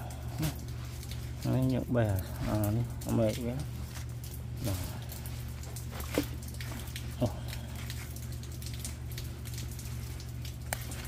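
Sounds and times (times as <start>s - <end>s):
light rain pattering: 0.0s - 11.0s
steady low hum: 0.0s - 11.0s.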